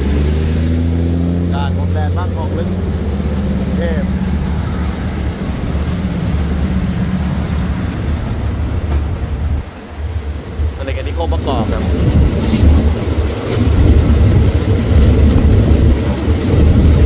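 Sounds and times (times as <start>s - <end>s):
diesel train engines droning: 0.0s - 17.0s.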